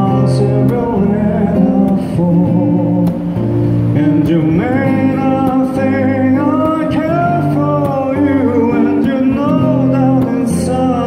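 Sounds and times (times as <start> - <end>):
man singing a slow ballad: 0.0 - 11.0
strummed acoustic guitar: 0.0 - 11.0.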